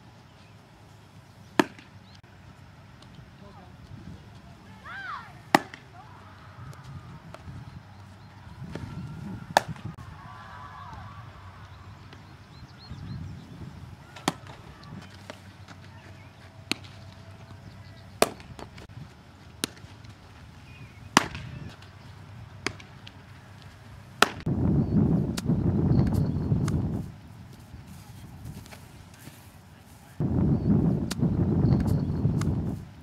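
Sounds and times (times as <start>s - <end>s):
baseball smacking into glove: 1.6s - 1.9s, 5.5s - 5.9s, 9.6s - 9.9s, 18.2s - 18.8s, 19.6s - 19.9s, 21.2s - 21.6s, 24.2s - 24.5s
baseball cracks: 1.6s - 2.1s, 5.4s - 6.0s, 9.5s - 10.0s, 14.1s - 16.0s, 16.6s - 18.9s, 19.5s - 24.5s, 25.3s - 26.9s.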